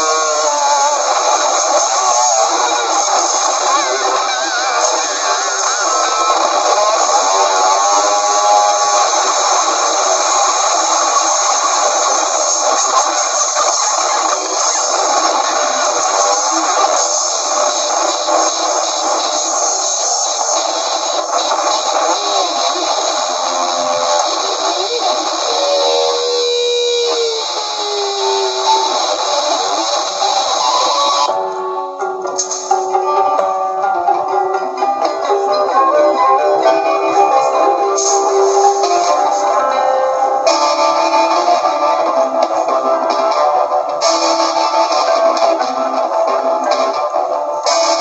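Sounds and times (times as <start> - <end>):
distorted electric guitars: 0.0 - 48.0
drums: 0.0 - 48.0.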